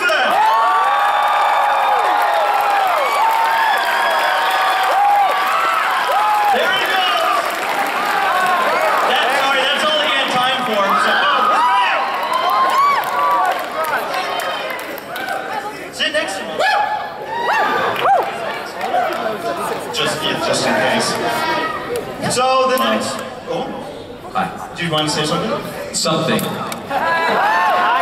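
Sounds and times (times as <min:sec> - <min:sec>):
crowd whooping: 0:00.0 - 0:15.6, 0:16.6 - 0:19.3, 0:26.9 - 0:28.0
crowd applauding: 0:00.0 - 0:15.9, 0:17.4 - 0:19.9.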